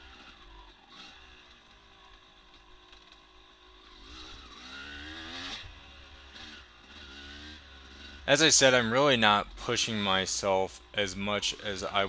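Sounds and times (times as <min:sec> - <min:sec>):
dirt bike engine revving: 0:00.0 - 0:02.3, 0:02.9 - 0:12.0.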